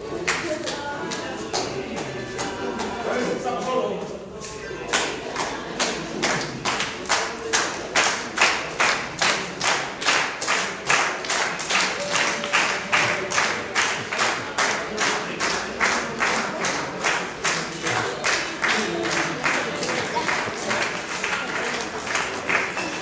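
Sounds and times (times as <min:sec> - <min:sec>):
people clapping in time: 0:00.0 - 0:03.2, 0:04.4 - 0:23.0.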